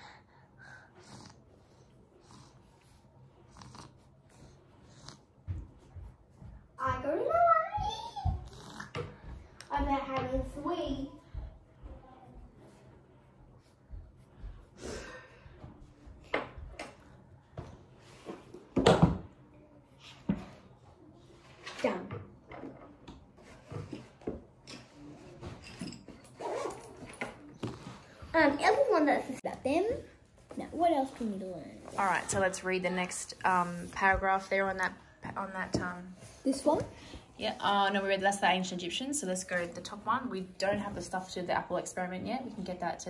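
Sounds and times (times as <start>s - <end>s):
knocks and rustles at table: 7.7s - 10.8s, 15.6s - 19.4s, 20.1s - 20.6s, 21.5s - 28.3s.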